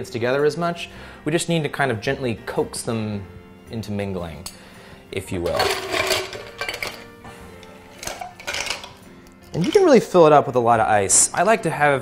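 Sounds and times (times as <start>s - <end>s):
background music: 0.0s - 12.0s
ice cubes clattering in scoop: 5.5s - 7.1s, 8.0s - 10.0s.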